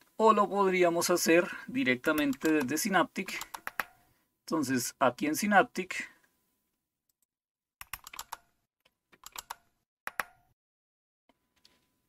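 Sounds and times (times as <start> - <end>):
keyboard and mouse clicking: 2.1 - 2.8, 3.4 - 4.0, 7.8 - 8.5, 9.1 - 10.4.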